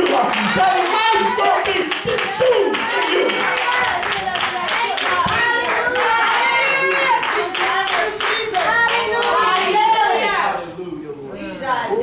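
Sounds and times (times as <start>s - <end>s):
people clapping in rhythm: 0.0s - 10.2s.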